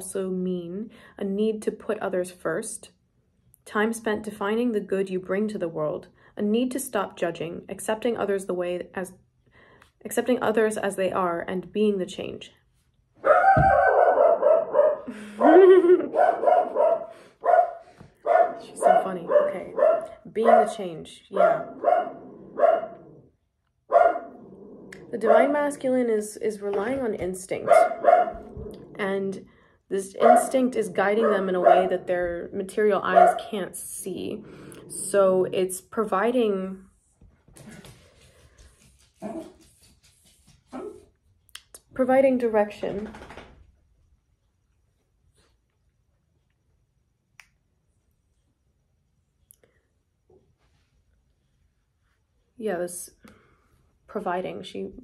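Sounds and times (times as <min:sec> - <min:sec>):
dog barking: 0:13.2 - 0:15.1, 0:16.1 - 0:23.2, 0:23.9 - 0:24.4, 0:27.6 - 0:28.7, 0:30.2 - 0:30.6, 0:31.2 - 0:32.1, 0:33.0 - 0:33.5.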